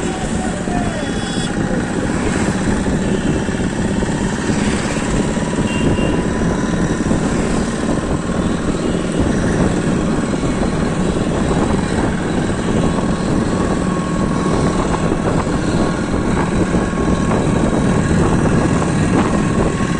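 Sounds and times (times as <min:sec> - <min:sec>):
loud engine rumble: 0:00.0 - 0:19.9.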